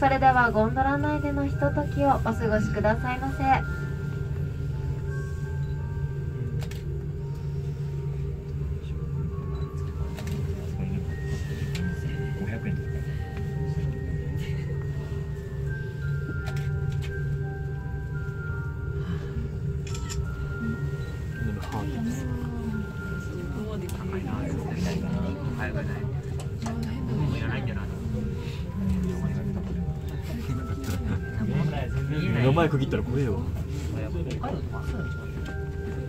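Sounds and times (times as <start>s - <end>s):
faint background music: 0.0s - 36.0s
low gondola hum: 0.0s - 36.0s.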